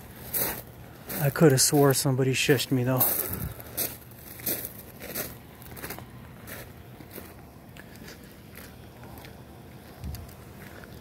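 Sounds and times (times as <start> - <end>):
footsteps crunching on gravel: 0.0 - 11.0.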